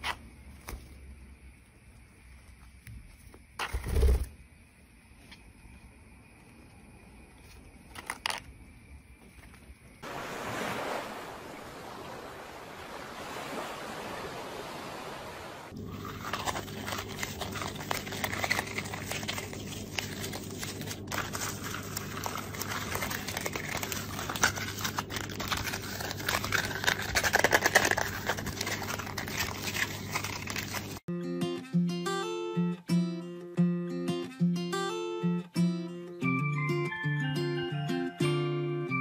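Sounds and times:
toilet paper crinkling: 0:15.8 - 0:31.1
plucked guitar music: 0:31.1 - 0:39.0.

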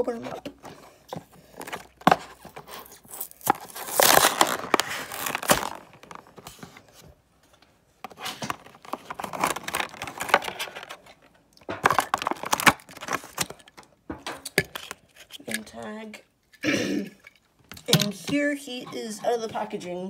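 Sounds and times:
plastic packaging crinkling and tearing: 0:01.5 - 0:06.6, 0:08.1 - 0:13.9.

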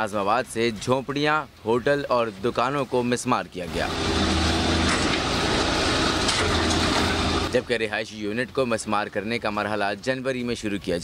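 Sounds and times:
excavator diesel engine running: 0:03.7 - 0:07.7.

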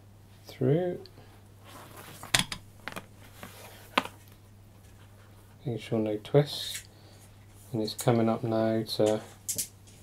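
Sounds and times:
low steady hum: 0:00.0 - 0:10.0
rope rustling: 0:01.6 - 0:05.6.

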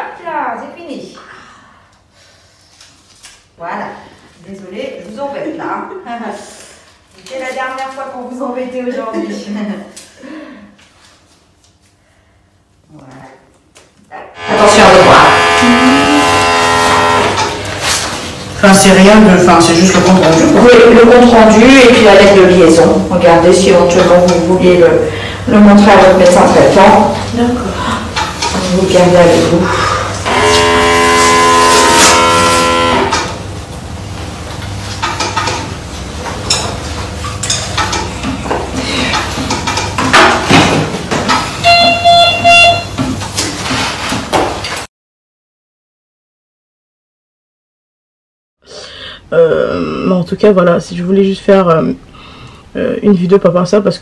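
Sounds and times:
held pitched tone: 0:14.3 - 0:17.7, 0:41.6 - 0:43.0
horn sounding in pulses: 0:14.4 - 0:18.1, 0:30.2 - 0:33.4, 0:41.6 - 0:43.1
knocks and clatter: 0:35.0 - 0:44.9.

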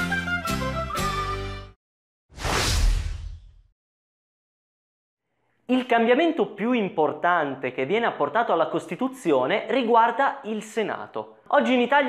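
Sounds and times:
whoosh transition effect: 0:02.3 - 0:03.6.

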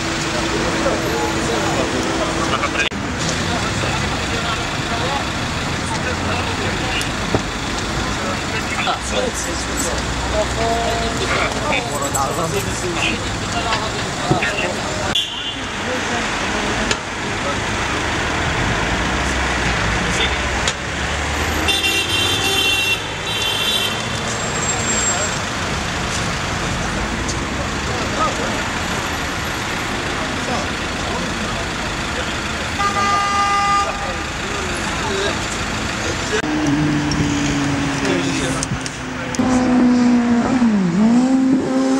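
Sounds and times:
passing traffic: 0:00.0 - 0:41.9
voices: 0:00.0 - 0:41.9
vehicle horn tooting: 0:15.2 - 0:15.6, 0:21.7 - 0:24.1, 0:32.8 - 0:34.2.

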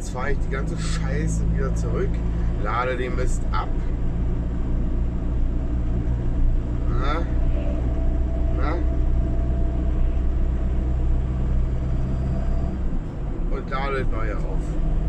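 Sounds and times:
diesel van engine drone: 0:00.0 - 0:15.0
road noise: 0:00.0 - 0:15.0
faint steady whine: 0:00.2 - 0:14.7.

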